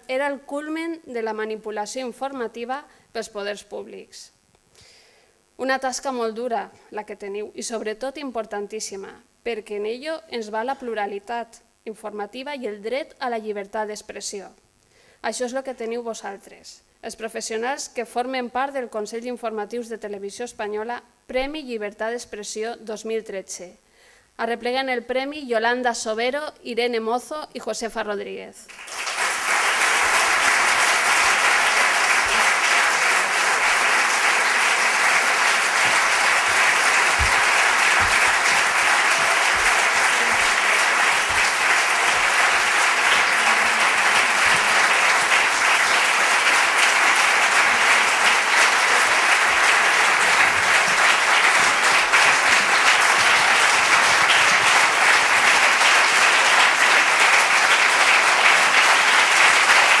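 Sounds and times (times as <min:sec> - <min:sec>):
audience applauding: 0:28.7 - 1:00.0.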